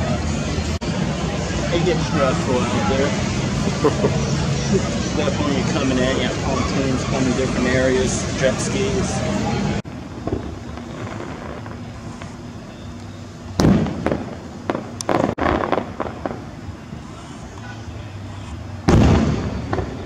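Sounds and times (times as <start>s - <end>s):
fireworks booming: 9.9s - 12.6s, 13.5s - 17.1s, 18.8s - 20.0s
fireworks pops and crackles: 10.0s - 16.5s, 18.8s - 20.0s.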